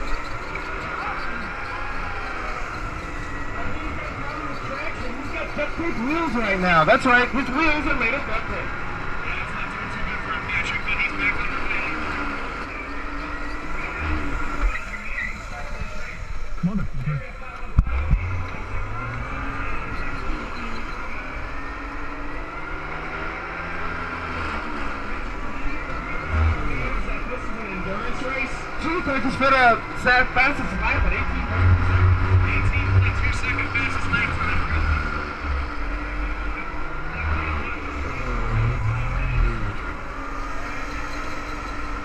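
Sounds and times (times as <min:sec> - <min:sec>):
electric kart motor running: 0:00.0 - 0:42.0.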